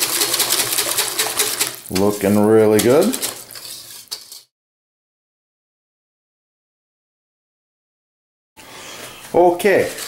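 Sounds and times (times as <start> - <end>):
whisk clinking against bowl: 0.0 - 4.5.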